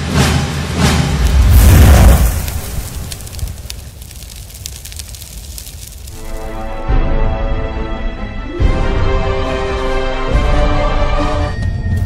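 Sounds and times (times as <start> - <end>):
music: 0.0 - 1.3, 6.2 - 12.0.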